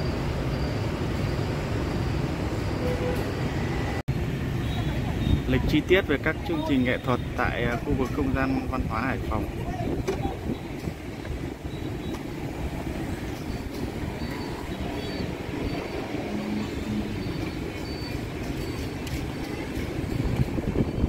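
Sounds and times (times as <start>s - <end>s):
passing motorbikes rumble: 4.5s - 21.0s.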